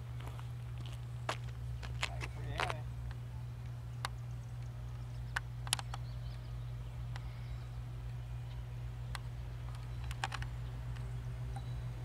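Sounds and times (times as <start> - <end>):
diesel locomotive engine rumble: 0.0 - 12.0.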